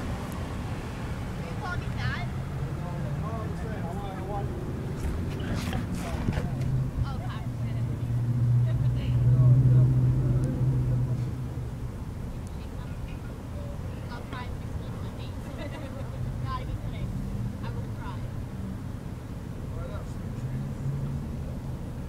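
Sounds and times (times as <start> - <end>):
car engine humming: 0.0 - 22.0
faint distant voices: 0.0 - 22.0.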